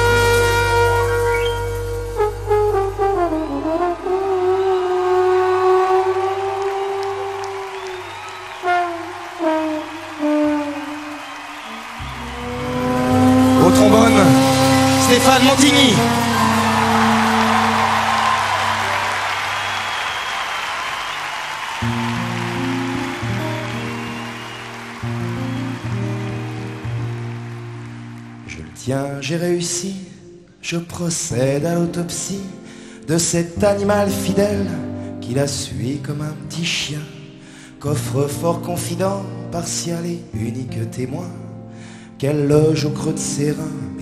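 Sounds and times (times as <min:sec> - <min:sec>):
bass line: 0:00.0 - 0:07.4, 0:12.0 - 0:19.0
trombone holding a long note: 0:00.0 - 0:08.0, 0:08.6 - 0:19.4
live band playing: 0:00.0 - 0:20.6, 0:21.6 - 0:28.4
audience cheering and applause: 0:03.1 - 0:29.2.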